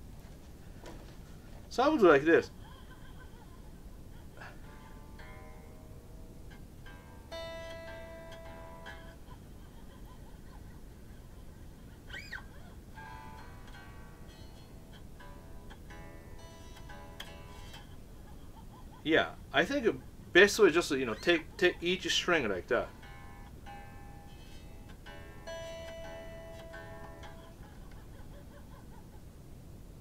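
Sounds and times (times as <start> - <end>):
electric guitar strings plucked: 4.6 - 9.3, 12.9 - 18.0, 22.4 - 27.7.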